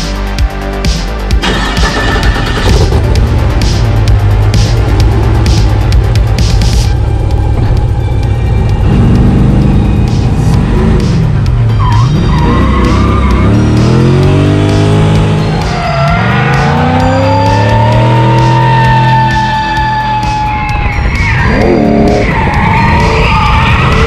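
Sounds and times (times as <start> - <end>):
background music: 0.0 - 24.0
car engine revving hard: 12.0 - 19.8
tyres squealing: 15.2 - 24.0.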